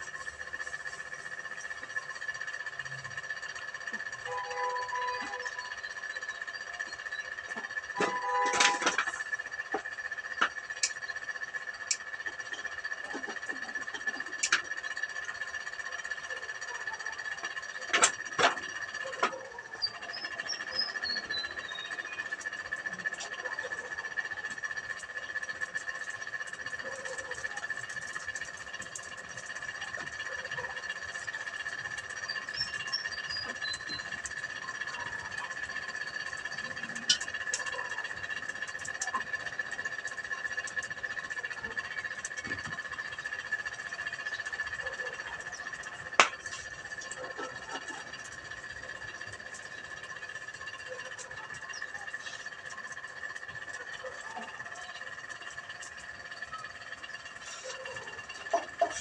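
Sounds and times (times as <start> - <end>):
high-pitched drone: 0.0 - 59.0
straw burning with crackles: 5.2 - 59.0.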